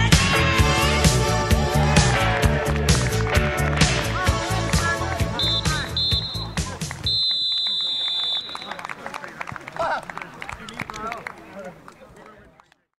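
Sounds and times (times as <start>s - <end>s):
players shouting: 4.0s - 10.4s
referee's whistle long blast: 5.4s - 8.8s.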